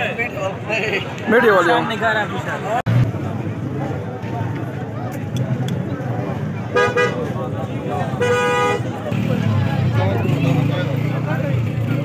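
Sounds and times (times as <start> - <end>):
crowd chatter: 0.0 - 12.0
vehicle horn toots: 6.8 - 7.2, 8.2 - 8.9.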